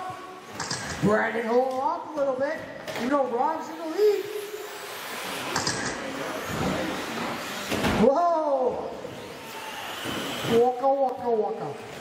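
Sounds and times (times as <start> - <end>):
person speaking: 1.0 - 4.7
electric toy car motors whirring: 3.8 - 8.0, 8.9 - 11.0.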